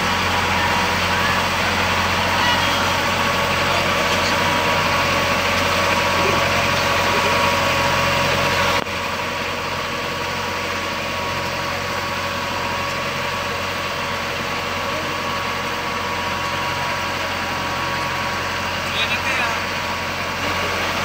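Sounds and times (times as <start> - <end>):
boat engine humming: 0.0 - 21.0.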